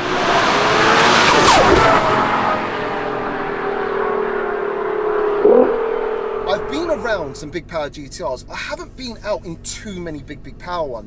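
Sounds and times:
car engine pulling hard: 0.0 - 7.8.

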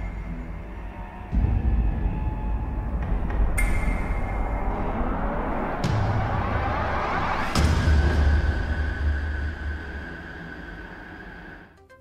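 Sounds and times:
deep bass rumble: 0.0 - 11.4.

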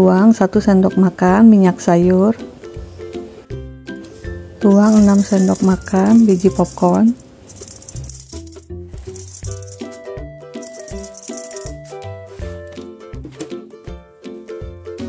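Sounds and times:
background music: 0.0 - 15.0
popcorn kernels rattling in pan: 4.7 - 12.0.

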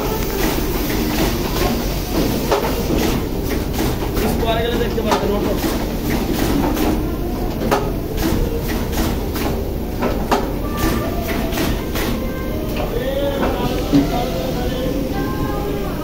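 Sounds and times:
machinery hum: 0.0 - 16.0
background voices: 12.2 - 16.0.

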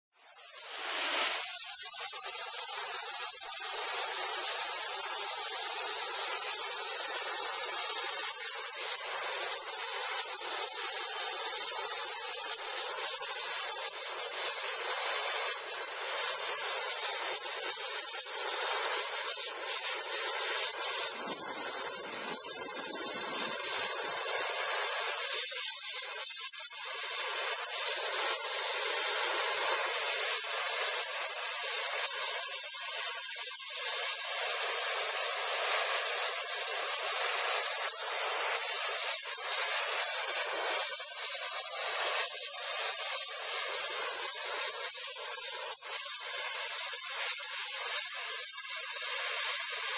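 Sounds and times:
gas torch flame hissing: 0.2 - 49.9.

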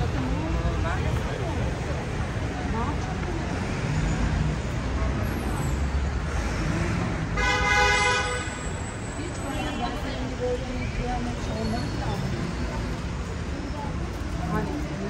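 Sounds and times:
passers-by talking: 0.0 - 15.0
rumble of passing vehicles: 0.0 - 15.0
vehicle horn: 7.4 - 8.7.

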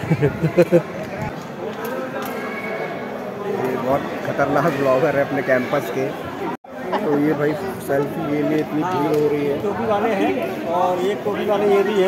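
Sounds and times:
indistinct crowd chatter: 0.0 - 12.0.

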